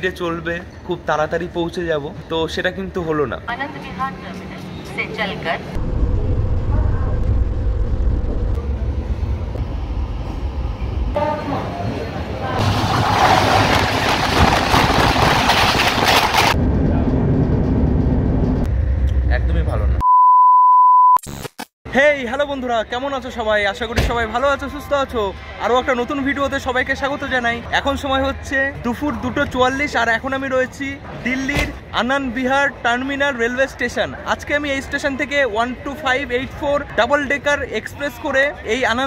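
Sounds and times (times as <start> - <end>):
passenger trains rumbling: 3.7 - 20.0
trains passing at speed: 8.3 - 19.8
steady electronic beep: 20.0 - 21.2.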